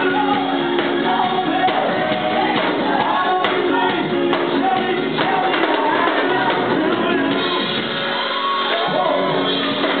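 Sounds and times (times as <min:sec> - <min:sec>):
gospel choir singing over music: 0:00.0 - 0:10.0
shouts of praise: 0:07.8 - 0:09.8.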